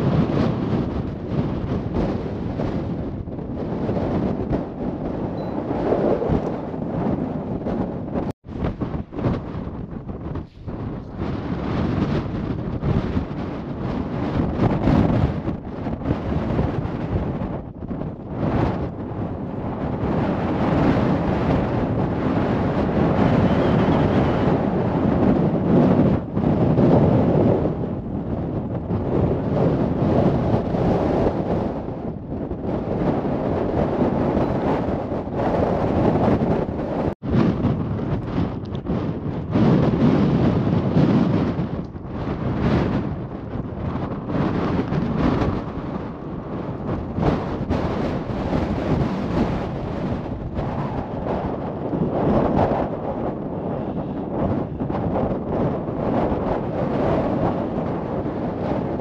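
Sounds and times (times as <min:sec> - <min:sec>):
gusty wind buffeting microphone: 0:00.0 - 0:59.0.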